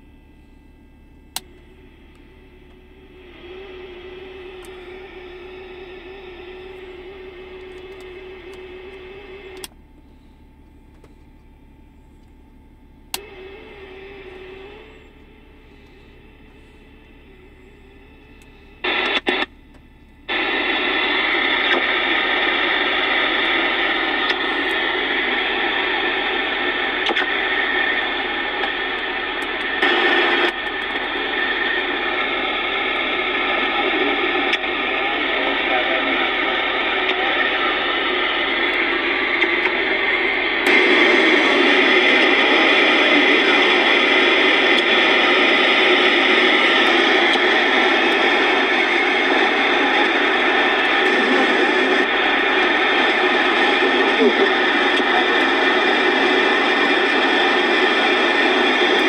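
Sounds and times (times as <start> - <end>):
voices over radio: 0.0 - 12.2, 12.8 - 59.0
radio receiver static: 0.0 - 59.0
short radio crackles: 13.2 - 59.0.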